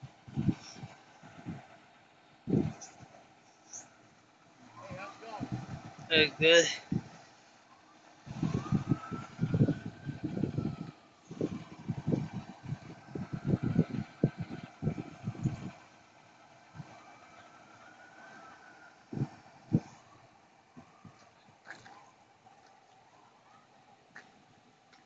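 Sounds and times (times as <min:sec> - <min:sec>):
wind buffeting on microphone: 0:00.0 - 0:01.8, 0:02.4 - 0:03.2, 0:04.8 - 0:07.3, 0:08.2 - 0:15.9, 0:16.6 - 0:17.2, 0:18.3 - 0:20.2
faint emergency siren wailing: 0:00.0 - 0:25.0.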